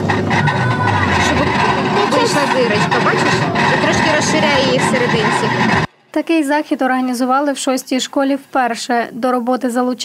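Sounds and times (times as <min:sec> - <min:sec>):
potter's wheel motor hum: 0:00.0 - 0:05.9
wheel head whine: 0:00.0 - 0:05.9.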